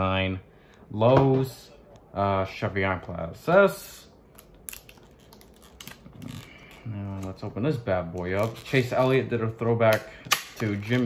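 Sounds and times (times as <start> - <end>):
plastic blister pack crackling: 4.2 - 9.2, 9.9 - 11.0.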